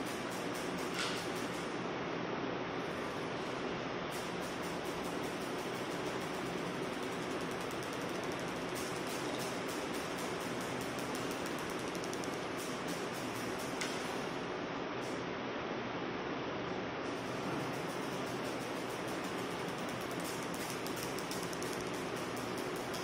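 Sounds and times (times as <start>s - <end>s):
steady background hiss: 0.0s - 23.0s.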